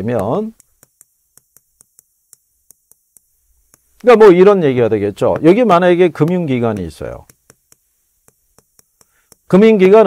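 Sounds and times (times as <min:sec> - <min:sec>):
chalk ticking on a chalkboard: 0:00.0 - 0:10.0.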